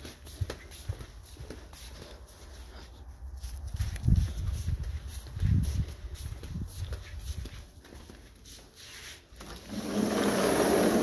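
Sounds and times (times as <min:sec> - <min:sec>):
footsteps on hard floor: 0:00.0 - 0:09.6
sliding glass door rolling: 0:09.4 - 0:11.0.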